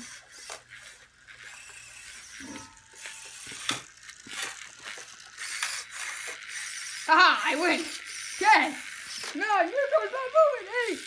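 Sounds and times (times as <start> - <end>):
electric motors whirring: 0.0 - 11.0.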